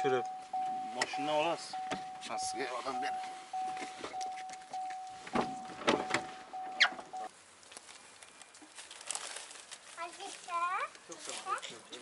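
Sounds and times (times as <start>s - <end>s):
car door warning chime: 0.0s - 7.3s
car door clicks and knocks: 1.8s - 2.2s, 3.8s - 7.2s
sharp squeak: 6.6s - 7.3s.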